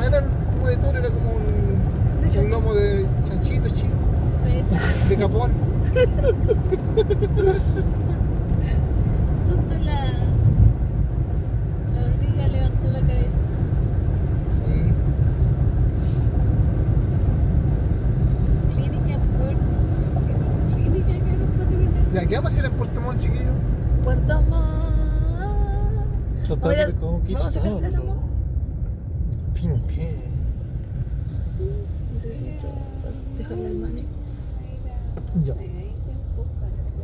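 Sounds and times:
car road and engine rumble: 0.0 - 37.0.

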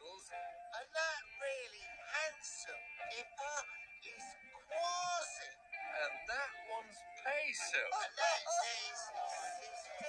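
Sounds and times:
high-pitched cartoon voices: 7.7 - 10.0.

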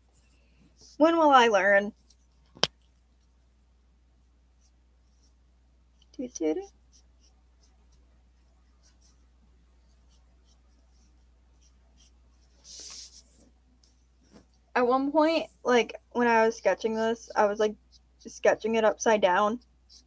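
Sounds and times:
marker scratching on paper: 6.6 - 9.3, 9.9 - 14.6, 19.5 - 20.0
brief hiss: 12.6 - 13.3.

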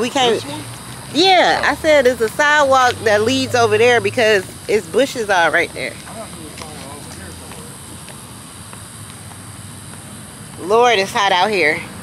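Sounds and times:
faint voices: 0.0 - 8.2
low hum and hiss: 0.0 - 12.0.

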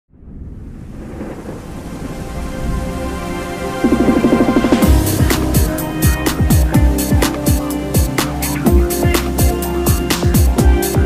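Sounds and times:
deep noisy rumble: 0.1 - 10.8
faint musical tones: 1.9 - 11.0.

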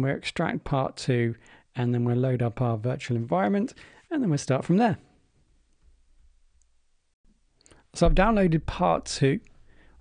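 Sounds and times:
person speaking: 0.0 - 5.2, 7.6 - 9.6.

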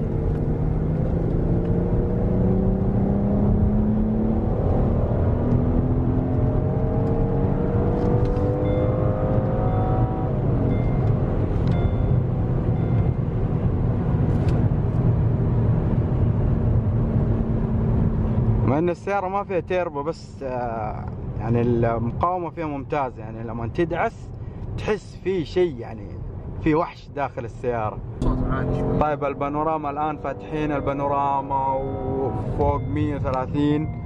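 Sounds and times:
car engine accelerating: 0.0 - 18.7, 28.0 - 34.0
road noise: 0.0 - 34.0.

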